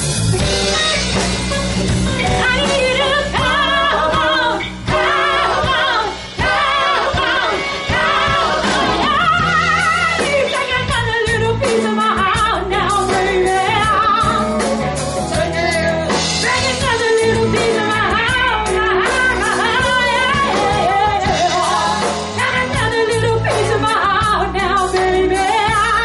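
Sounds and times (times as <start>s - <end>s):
rock-pop band playing: 0.0s - 26.0s
woman singing lead: 0.6s - 26.0s.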